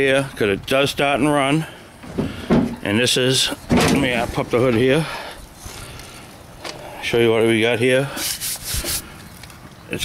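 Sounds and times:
rubbing and handling noise: 8.1 - 9.6.

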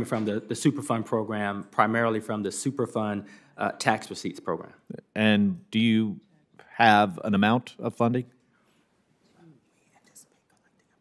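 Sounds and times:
faint whispered voices: 9.3 - 11.0.

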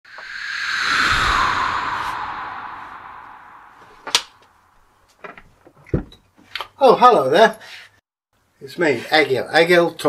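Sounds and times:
whoosh: 0.1 - 4.9.

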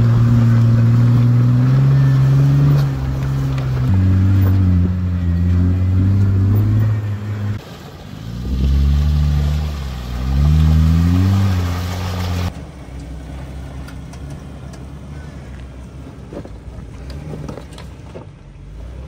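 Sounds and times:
engine revving: 0.0 - 7.6, 8.2 - 12.5
engine running under load: 0.0 - 15.6.

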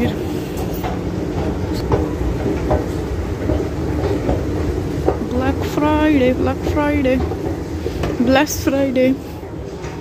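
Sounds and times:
escalator mechanical rumble: 0.0 - 10.0.

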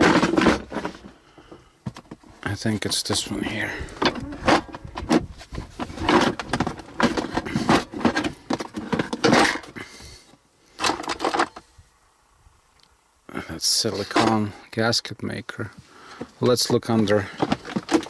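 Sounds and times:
small tools rattling in box: 3.8 - 9.8, 17.0 - 18.0
plastic box being opened: 3.9 - 9.8, 16.7 - 18.0.

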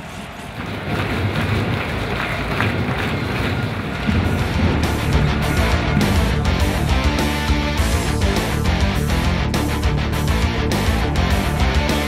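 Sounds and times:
background music: 4.0 - 12.0.

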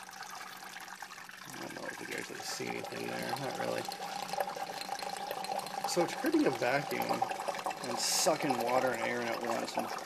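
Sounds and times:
water gurgling through pipes: 0.0 - 10.0.

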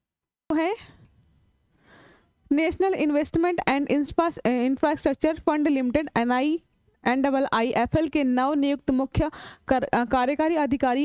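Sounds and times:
soft breath: 1.7 - 2.4, 9.3 - 9.7.

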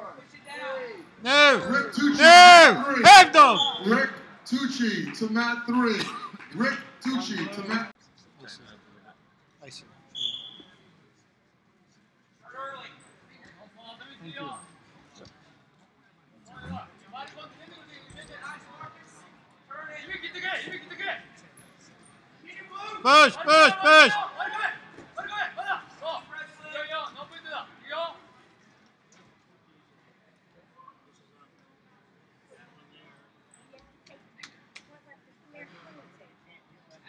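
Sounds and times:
gym hall din: 1.2 - 7.8, 23.1 - 24.2
person shouting: 1.3 - 3.6, 23.1 - 24.2
shoe squeaking on a mat: 10.2 - 10.8.

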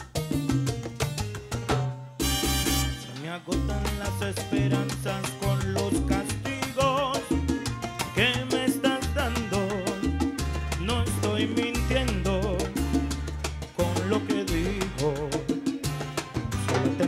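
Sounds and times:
salsa band playing: 0.0 - 17.0.

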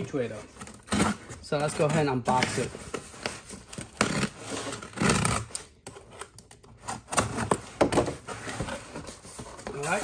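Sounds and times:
packing tape tearing: 0.6 - 7.6
cardboard scraping and rustling: 6.8 - 10.0.

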